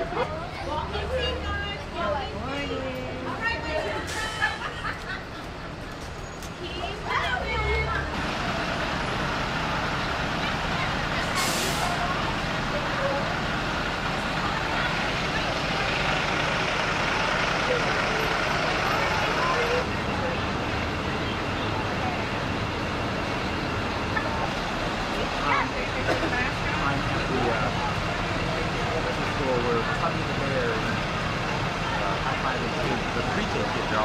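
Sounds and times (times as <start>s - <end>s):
diesel bus engine running: 0.0s - 34.0s
air brakes hissing: 4.0s - 4.6s, 11.2s - 12.1s.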